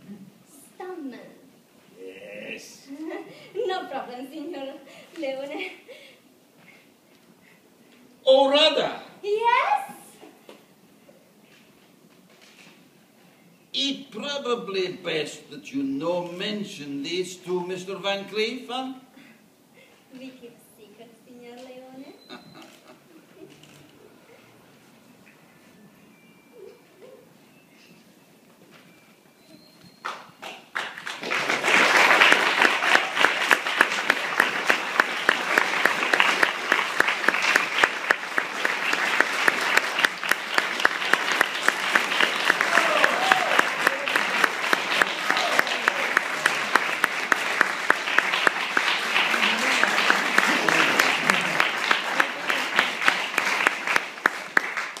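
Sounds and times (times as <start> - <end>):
audience applauding: 30.0 - 55.0.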